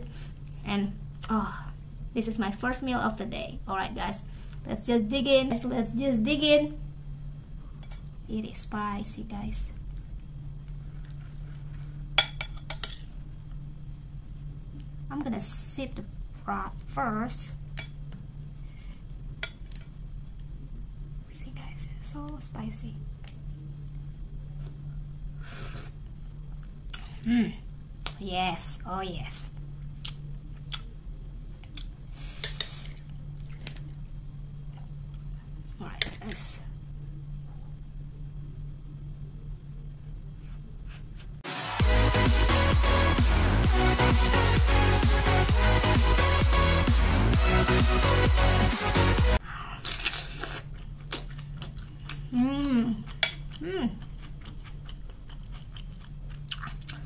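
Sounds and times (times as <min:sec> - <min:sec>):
low steady hum: 0:00.0 - 0:57.0
chewing: 0:49.8 - 0:52.3, 0:53.0 - 0:57.0.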